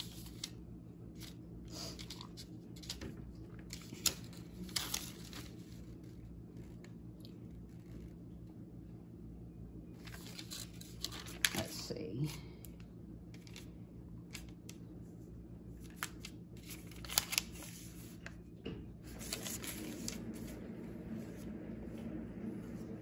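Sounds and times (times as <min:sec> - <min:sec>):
paper receipt rustling: 0:00.0 - 0:08.3, 0:10.0 - 0:14.8, 0:15.7 - 0:18.5, 0:19.1 - 0:20.7
low steady hum: 0:00.0 - 0:23.0.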